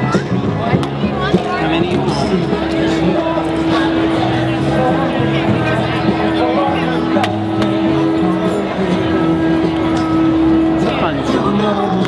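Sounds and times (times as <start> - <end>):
people talking: 0.0 - 12.0
long steady low note: 1.6 - 12.0.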